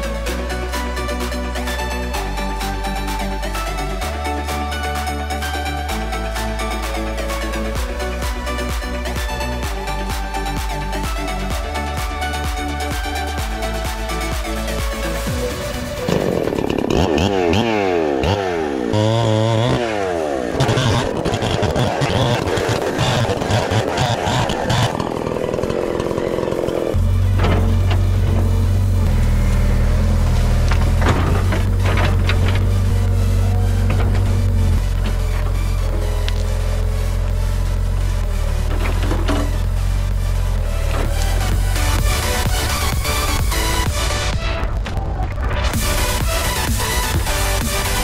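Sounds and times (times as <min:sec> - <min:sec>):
electronic dance music: 0:00.0 - 0:17.8, 0:39.5 - 0:48.0
chainsaw cutting through log: 0:00.0 - 0:44.4, 0:45.7 - 0:48.0.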